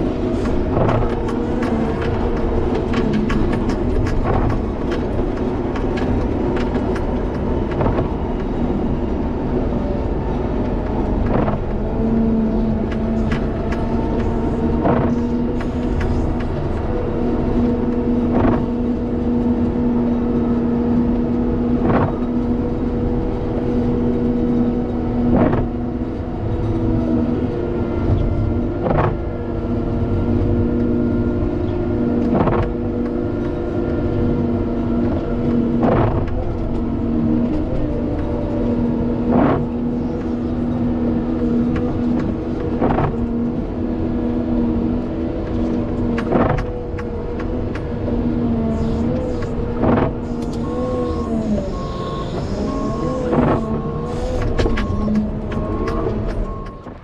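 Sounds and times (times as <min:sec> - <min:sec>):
diesel engine running under load: 0:00.0 - 0:57.0
reverse alarm beeping: 0:50.6 - 0:56.9.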